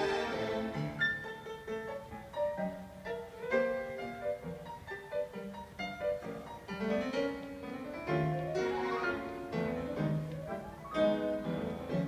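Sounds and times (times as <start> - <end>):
piano playing with orchestra: 0.0 - 12.0.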